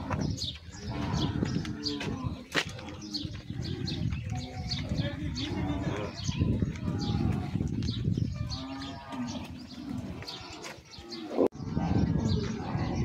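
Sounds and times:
cattle mooing: 0:00.8 - 0:04.0, 0:08.4 - 0:13.0.

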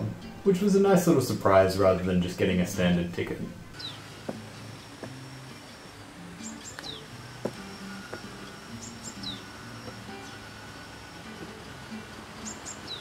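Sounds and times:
quiet background music: 0:00.0 - 0:13.0
small birds chirping: 0:03.7 - 0:13.0.

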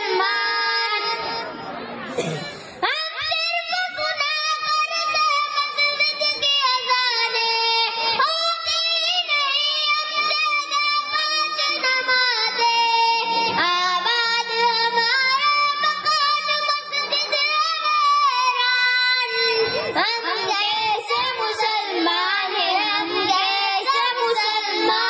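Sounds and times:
child singing devotional song: 0:00.0 - 0:01.6, 0:02.8 - 0:25.0.

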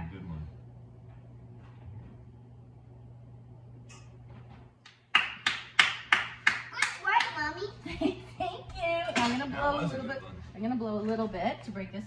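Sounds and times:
hands clapping: 0:04.8 - 0:07.5.

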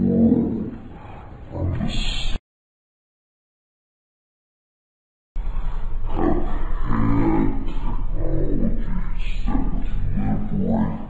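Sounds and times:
slowed voices low growl: 0:00.0 - 0:02.4, 0:05.4 - 0:11.0.

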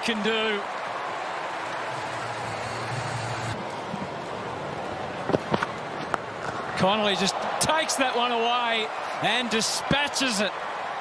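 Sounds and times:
stadium crowd hubbub: 0:00.0 - 0:11.0.

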